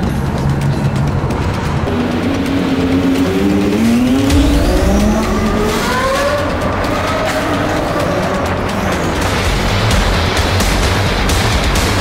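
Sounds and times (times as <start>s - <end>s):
car engine accelerating hard: 0.2s - 12.0s.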